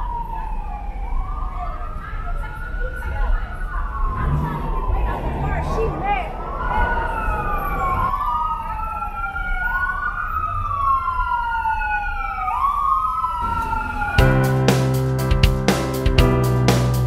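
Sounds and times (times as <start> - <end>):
emergency siren wailing: 0.0 - 15.2
traffic noise: 0.0 - 17.0
music with steady beat and keyboard: 14.2 - 17.0.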